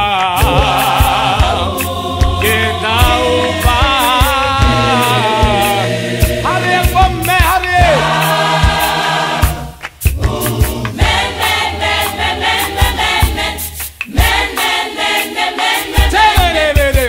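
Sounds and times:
gospel choir singing in harmony: 0:00.0 - 0:17.0
sharp hand claps: 0:07.0 - 0:14.8.

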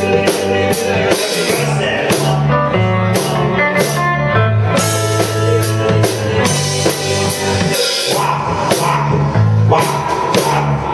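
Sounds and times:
live band playing rhythm and blues: 0:00.0 - 0:10.9.

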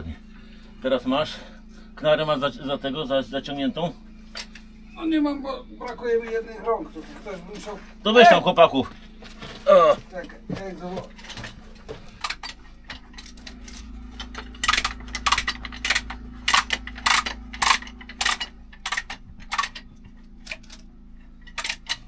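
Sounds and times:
metal chain clinking: 0:12.2 - 0:19.9.

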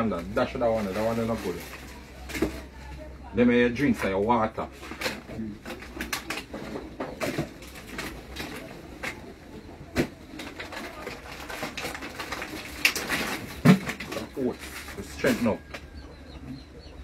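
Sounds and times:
plastic bags rustling and crinkling: 0:00.0 - 0:15.9.

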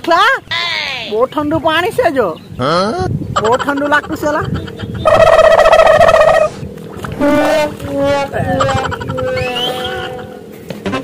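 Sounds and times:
high warbling trill: 0:04.9 - 0:11.0.

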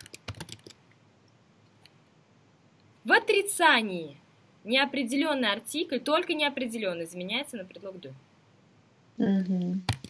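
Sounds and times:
computer keyboard keystrokes: 0:00.0 - 0:00.8.

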